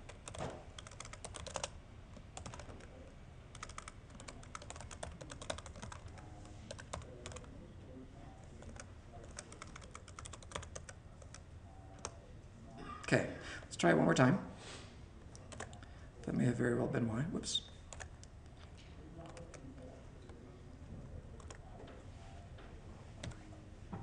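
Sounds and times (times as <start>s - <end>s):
faint computer keyboard typing: 0.0s - 7.6s, 8.4s - 12.3s, 15.3s - 15.9s, 17.8s - 20.4s, 21.3s - 22.0s, 23.2s - 23.5s.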